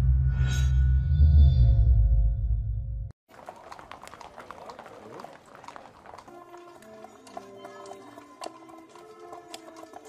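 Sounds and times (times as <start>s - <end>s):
horse hooves clip-clopping on pavement: 3.3s - 10.0s.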